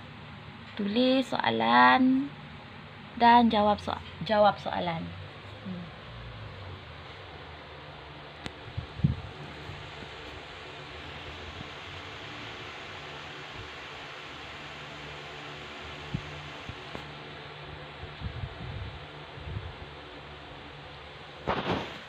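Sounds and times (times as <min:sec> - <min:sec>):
room hiss: 0:00.0 - 0:22.0.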